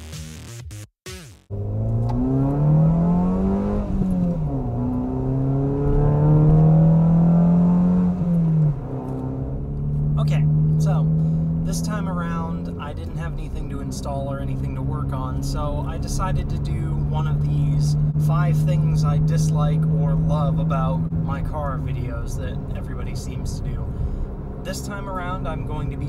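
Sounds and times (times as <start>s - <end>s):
car engine accelerating: 1.5s - 26.0s.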